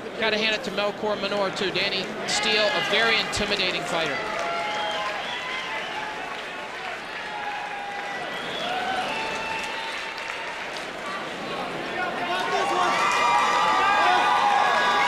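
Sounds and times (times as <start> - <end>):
crowd cheering and shouting: 0.8 - 15.0
applause: 3.5 - 15.0.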